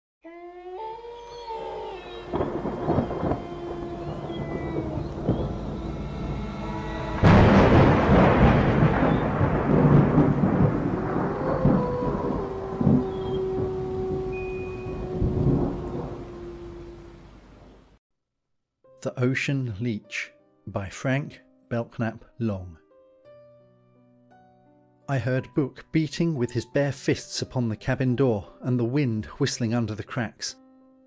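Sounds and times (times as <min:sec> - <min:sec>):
eerie held tones: 0:00.8 - 0:09.4, 0:10.6 - 0:17.6
rain: 0:02.1 - 0:18.0
rolling thunderclap: 0:02.3 - 0:17.1.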